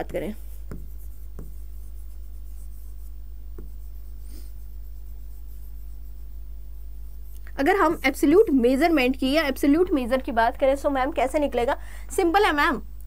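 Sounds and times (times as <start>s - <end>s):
pen writing on display board: 0.0s - 6.3s
low electrical hum: 0.0s - 13.0s.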